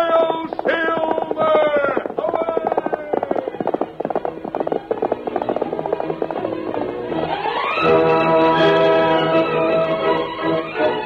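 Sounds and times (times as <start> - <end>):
galloping horse hoofbeats: 0.0 - 10.0.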